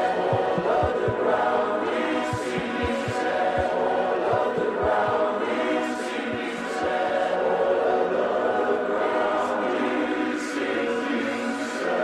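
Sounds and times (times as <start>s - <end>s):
wordless singing: 0.0s - 12.0s
held chords: 0.3s - 1.3s, 2.4s - 5.4s.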